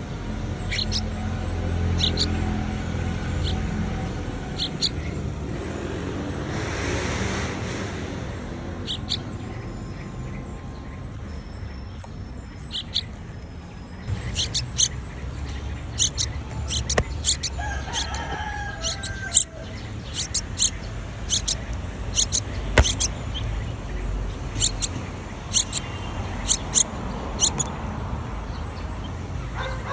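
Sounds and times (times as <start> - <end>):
small birds chirping: 0.0 - 29.9
sharp taps: 16.8 - 17.4, 22.2 - 23.1.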